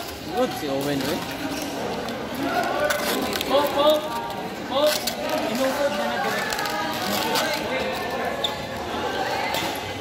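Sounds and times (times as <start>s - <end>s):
spectators chatter: 0.0s - 10.0s.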